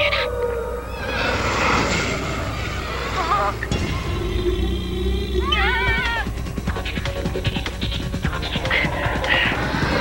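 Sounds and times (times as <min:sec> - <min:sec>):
wavering howl-like animal cry: 0:00.0 - 0:06.4
low sustained music drone: 0:00.0 - 0:10.0.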